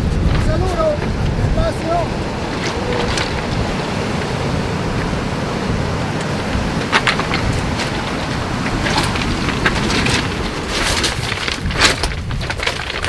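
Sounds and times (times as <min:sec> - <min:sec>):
surf breaking on rocks: 0:00.0 - 0:13.0
wind buffeting microphone: 0:00.0 - 0:13.0.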